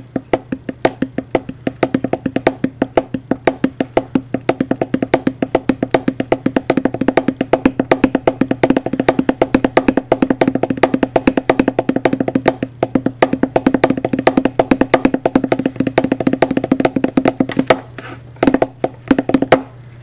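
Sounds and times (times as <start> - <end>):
fingertips drumming on tabletop: 0.0 - 19.8.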